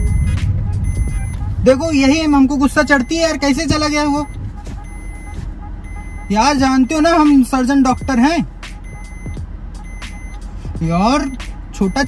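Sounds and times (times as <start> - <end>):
car engine rumble from inside: 0.0 - 12.0
road noise inside car: 0.0 - 12.0.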